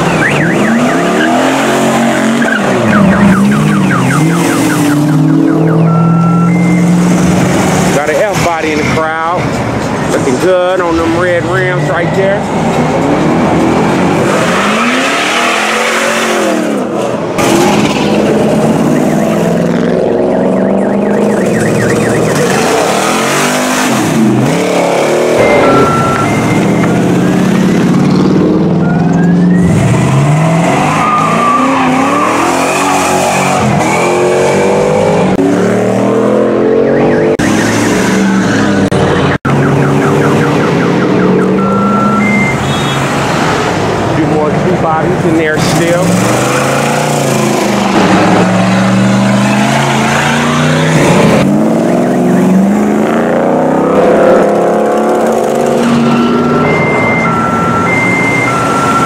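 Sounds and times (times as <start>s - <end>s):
car engine revving hard: 0.0s - 9.3s, 10.8s - 28.8s, 29.5s - 39.1s, 45.4s - 59.0s.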